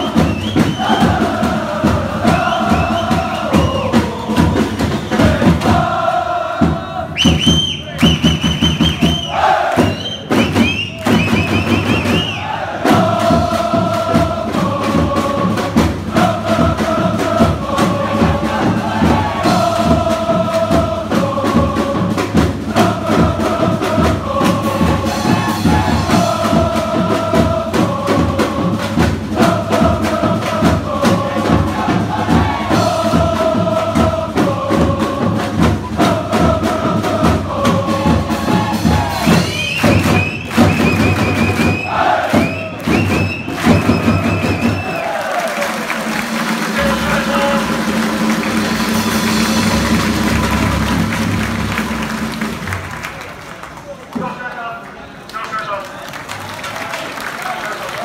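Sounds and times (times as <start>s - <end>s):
crowd chanting in unison: 0.0s - 7.6s, 8.6s - 10.4s, 11.6s - 52.7s
steady drum beat: 0.0s - 53.2s.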